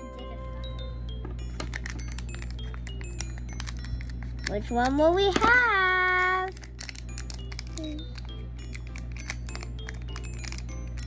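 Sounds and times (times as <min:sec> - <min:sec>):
light chiming music: 0:00.0 - 0:11.0
plastic wrapper crinkling: 0:01.6 - 0:05.4, 0:06.1 - 0:11.0.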